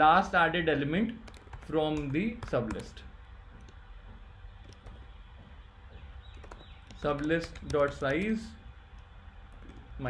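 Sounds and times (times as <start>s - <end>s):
low steady hum: 0.0s - 10.0s
keyboard typing clicks: 1.2s - 3.0s, 4.6s - 5.1s, 6.2s - 9.9s.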